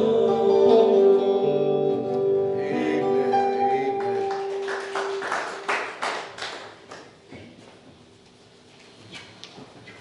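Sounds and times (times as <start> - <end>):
hand claps: 4.0 - 7.2.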